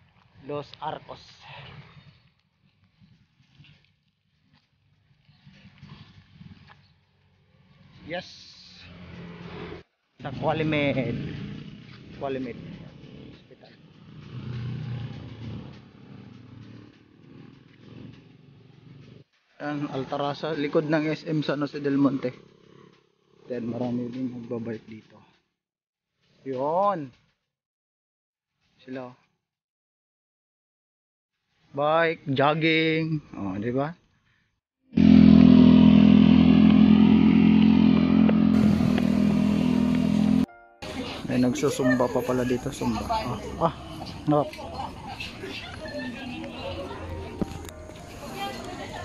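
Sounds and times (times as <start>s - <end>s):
motor vehicle passing: 0.0s - 25.5s, 35.0s - 49.0s
motor drone: 35.0s - 41.0s.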